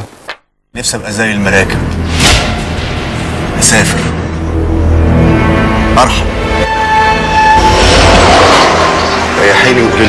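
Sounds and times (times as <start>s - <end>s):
trailer music: 1.7s - 10.0s
train horn: 6.5s - 9.1s
rushing noise: 6.7s - 10.0s.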